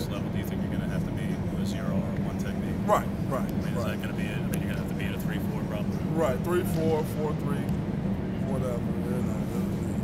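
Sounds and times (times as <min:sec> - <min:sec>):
faint crowd voices: 0:00.0 - 0:10.0
steady low hum: 0:00.0 - 0:10.0.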